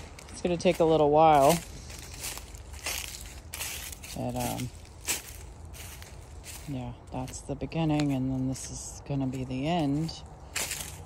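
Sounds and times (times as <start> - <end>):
footsteps crunching dry leaves: 0.0 - 11.0
steady low rumble: 0.0 - 11.0.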